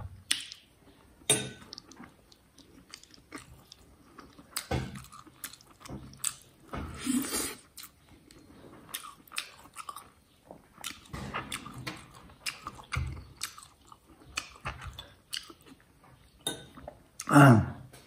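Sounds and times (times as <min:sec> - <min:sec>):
man chewing and biting meat: 0:01.7 - 0:08.0, 0:10.8 - 0:15.8.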